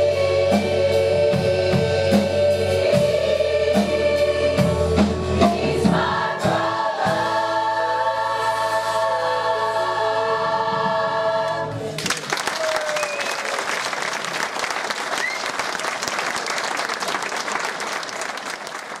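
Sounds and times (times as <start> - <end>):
choir singing a chord: 0.0 - 12.0
audience applause: 11.9 - 19.0.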